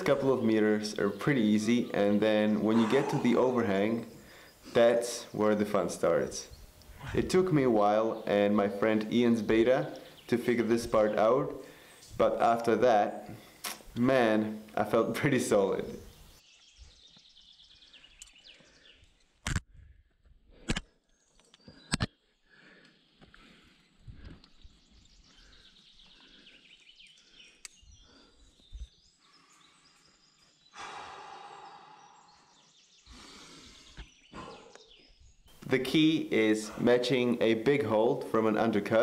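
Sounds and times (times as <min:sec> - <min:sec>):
faint birdsong: 0:00.0 - 0:39.0
climber exhaling hard: 0:02.7 - 0:04.5.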